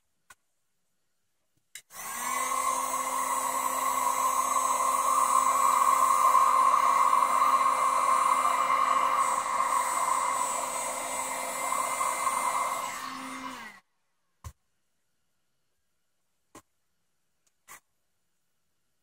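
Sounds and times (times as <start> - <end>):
heat gun humming: 1.9 - 13.8.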